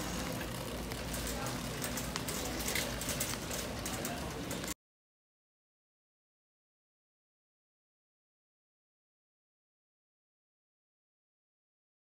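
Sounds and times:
small clicks and rattles: 0:00.0 - 0:04.8.

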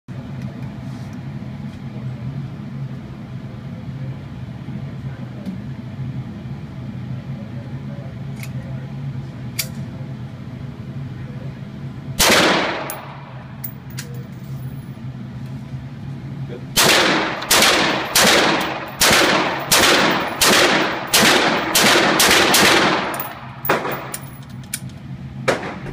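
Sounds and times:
steady low hum: 0:00.1 - 0:25.9
rifle shot echoing indoors: 0:12.2 - 0:13.4, 0:16.8 - 0:24.2, 0:25.4 - 0:25.9.

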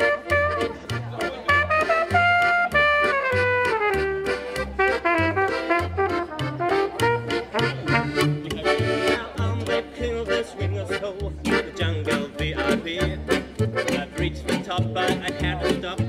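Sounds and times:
trumpet: 0:00.0 - 0:00.8, 0:01.5 - 0:08.4
accordion: 0:00.0 - 0:16.0
plucked double bass: 0:00.0 - 0:16.0
strummed acoustic guitar: 0:00.0 - 0:16.0.

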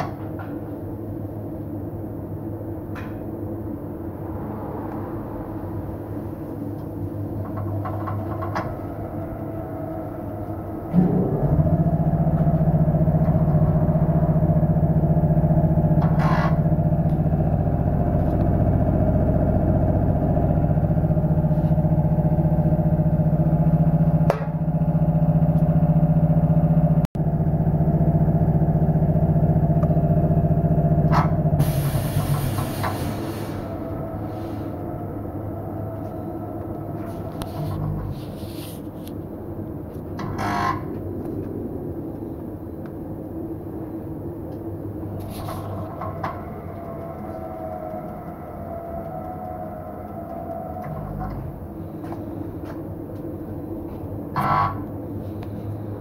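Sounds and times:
tyre balancing machine humming: 0:06.9 - 0:38.9, 0:43.4 - 0:56.0.

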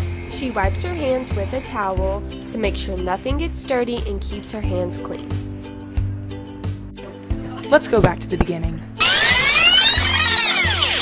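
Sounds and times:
rewind sound effect: 0:09.0 - 0:11.0.

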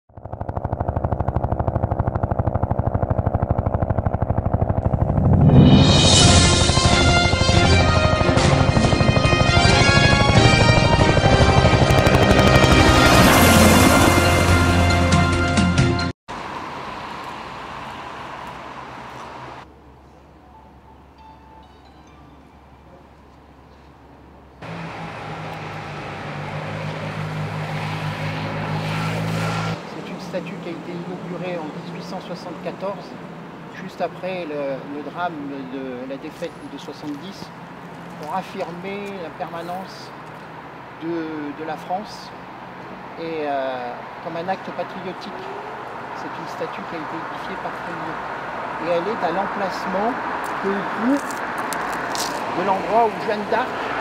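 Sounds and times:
low hum: 0:00.1 - 0:15.1
synthesized rapid pulsing: 0:00.1 - 0:15.1
vehicle engine humming: 0:00.1 - 0:20.4, 0:22.9 - 0:43.2, 0:44.0 - 0:54.0.

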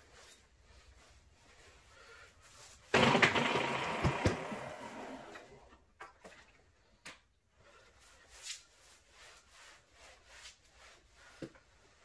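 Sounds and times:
mop pad swishing on wood floor: 0:07.8 - 0:12.0.

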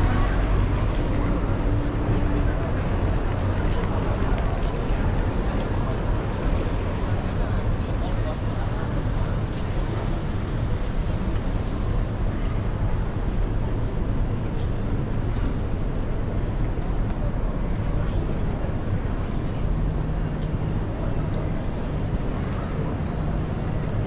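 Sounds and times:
chatter of passers-by: 0:00.0 - 0:24.0
traffic rumble: 0:00.0 - 0:24.0.

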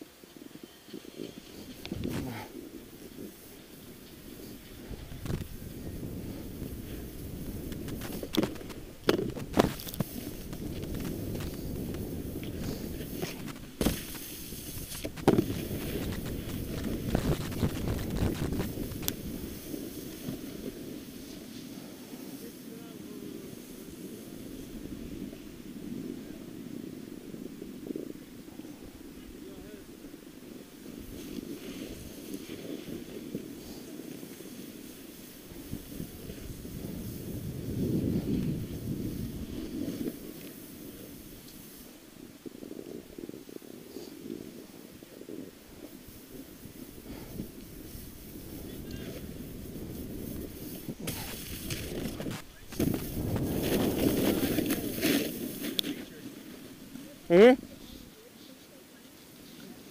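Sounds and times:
skis scraping over snow: 0:00.0 - 0:59.9
wind rumbling on microphone: 0:00.0 - 0:59.9.

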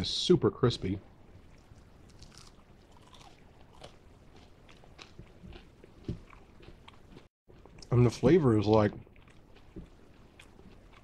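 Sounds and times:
person chewing crispy food: 0:01.4 - 0:11.0.

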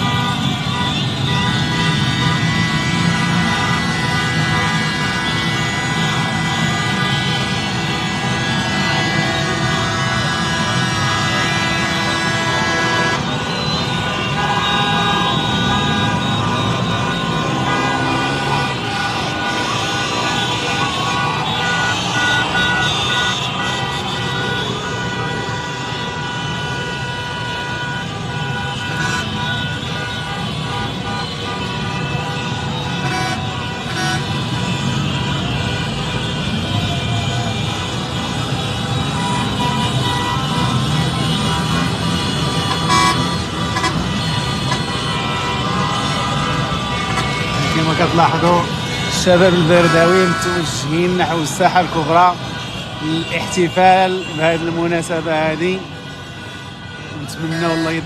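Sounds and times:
car horns honking: 0:00.0 - 0:58.0
street crowd din: 0:00.0 - 0:58.0
traffic: 0:00.0 - 0:58.0.

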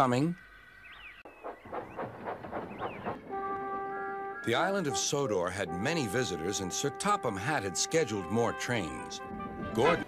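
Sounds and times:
steam locomotive chuffing: 0:01.3 - 0:03.5.

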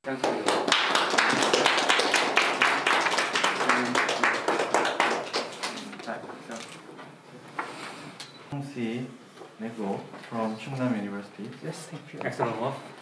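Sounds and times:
small group clapping: 0:00.0 - 0:06.7.

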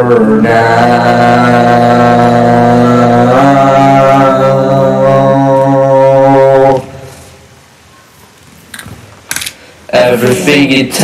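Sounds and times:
person singing a long low note: 0:00.0 - 0:07.2.

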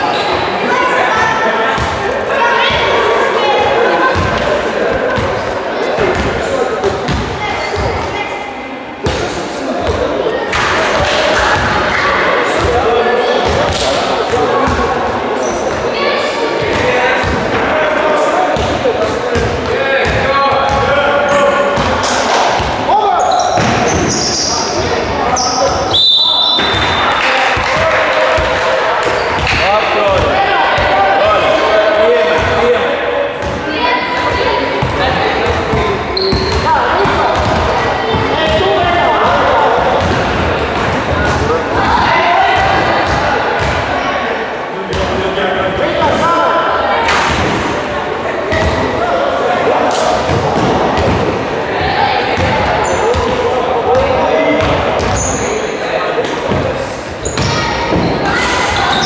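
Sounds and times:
players' voices: 0:00.0 - 0:59.0
shrill referee's whistle: 0:25.4 - 0:27.1
basketball bouncing on gym floor: 0:34.2 - 0:41.6.

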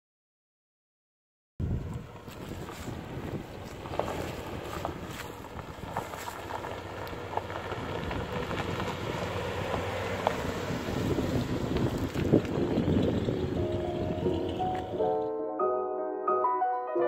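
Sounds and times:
wind buffeting microphone: 0:01.6 - 0:15.0
car engine driving past: 0:01.8 - 0:15.3
music: 0:13.6 - 0:17.0.

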